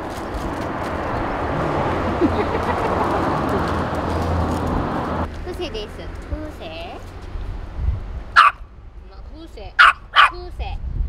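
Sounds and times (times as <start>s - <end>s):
dog barking: 8.4s - 8.6s, 9.8s - 10.4s.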